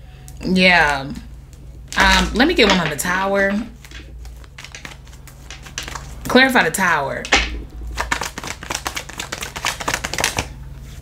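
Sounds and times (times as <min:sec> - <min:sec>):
cards being shuffled: 0:01.9 - 0:06.3, 0:07.3 - 0:11.0.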